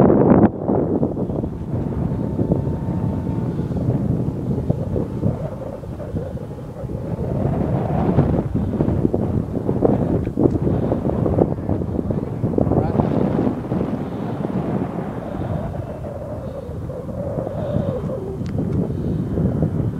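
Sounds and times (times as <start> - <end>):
model airplane whine: 0.0 - 19.9
wind buffeting microphone: 0.0 - 19.9.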